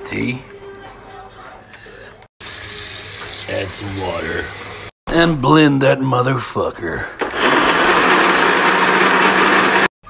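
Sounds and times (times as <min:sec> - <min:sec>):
blender whirring: 0:07.2 - 0:09.9.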